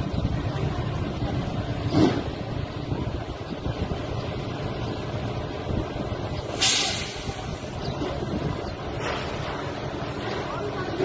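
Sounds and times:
construction machinery rumbling: 0.0 - 11.0.

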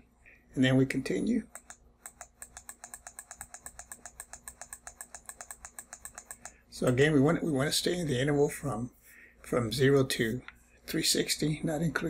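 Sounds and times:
rapid mouse button clicks: 1.5 - 7.0.

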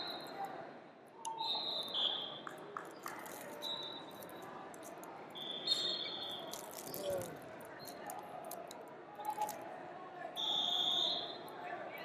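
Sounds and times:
wrestling hall background noise: 0.0 - 12.0.

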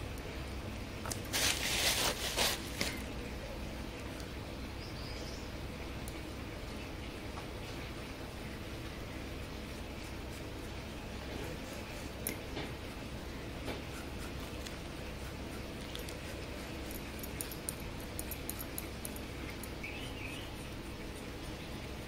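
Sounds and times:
low background noise: 0.0 - 22.0
plastic bag crinkling: 1.1 - 3.1.

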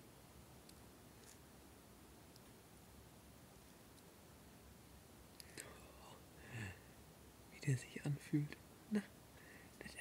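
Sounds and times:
soft whispered voice: 5.5 - 6.8, 7.5 - 10.0.

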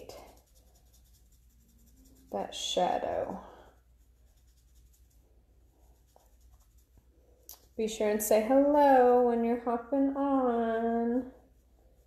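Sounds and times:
makeup brush scratching skin: 0.0 - 12.0.

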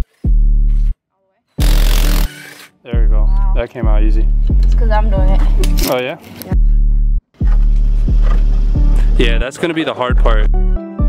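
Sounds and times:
rap music with deep bass: 3.0 - 5.8, 6.5 - 11.0.

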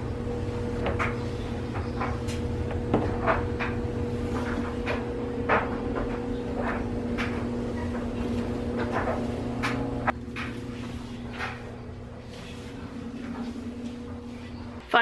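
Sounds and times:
duster brushing along baseboards: 0.0 - 14.6
low hum: 0.0 - 14.8.

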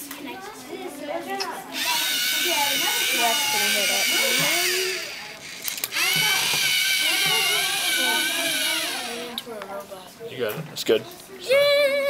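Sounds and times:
children chattering: 0.0 - 12.0
robot motors whirring: 1.8 - 9.4.

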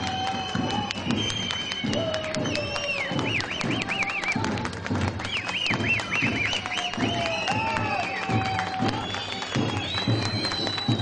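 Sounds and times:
crowd clapping along: 0.0 - 11.0
drum beats: 0.0 - 11.0.

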